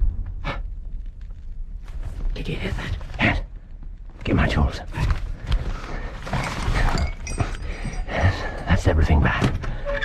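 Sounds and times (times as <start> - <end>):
metal mechanism clicking and creaking: 9.5 - 10.0.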